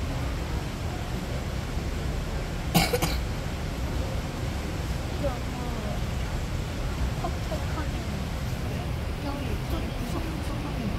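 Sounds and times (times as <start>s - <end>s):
low background rumble: 0.0s - 10.9s
person coughing: 2.7s - 3.2s.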